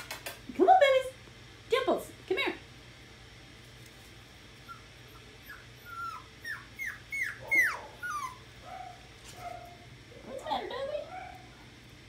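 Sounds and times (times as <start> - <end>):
puppy whimpering: 4.6 - 11.4.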